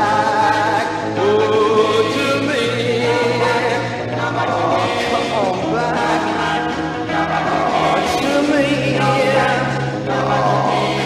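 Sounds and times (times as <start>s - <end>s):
vocal group singing close harmony: 0.0s - 11.0s.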